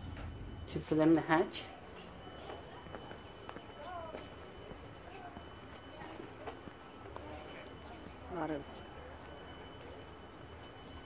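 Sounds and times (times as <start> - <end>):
distant voices: 0.0 - 11.0
thin steady high tone: 0.0 - 11.0.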